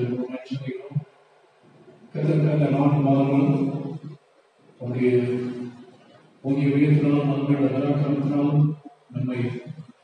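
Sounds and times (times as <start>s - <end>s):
man preaching in sing-song chant: 0.0s - 1.0s, 2.1s - 4.2s, 4.8s - 9.8s.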